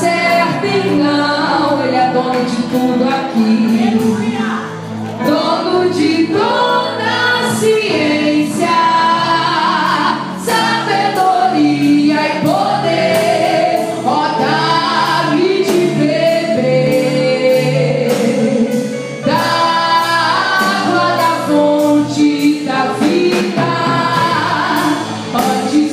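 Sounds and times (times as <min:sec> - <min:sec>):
drum kit with cymbals: 0:00.0 - 0:25.9
woman singing into microphone: 0:00.0 - 0:25.9.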